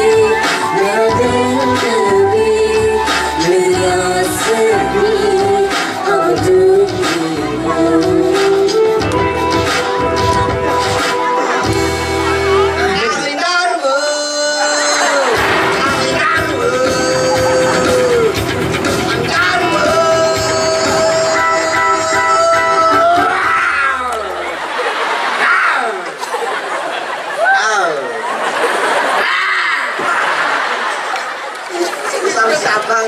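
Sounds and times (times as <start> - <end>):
woman singing: 0.0 - 9.3
live band music: 0.0 - 13.4, 14.6 - 25.2
people talking into microphones: 0.0 - 26.7, 29.1 - 33.0.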